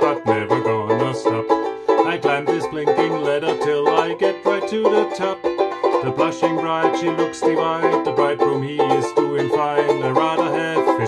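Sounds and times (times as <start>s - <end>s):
banjo ukulele strummed: 0.0s - 11.0s.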